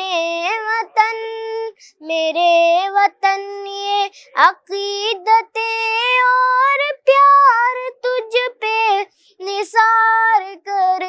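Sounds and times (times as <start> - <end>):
boy singing unaccompanied: 0.0 - 11.0.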